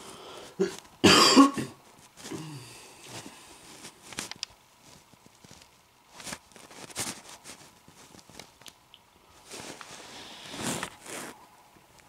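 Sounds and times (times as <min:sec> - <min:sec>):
person clearing throat: 0:00.6 - 0:02.7.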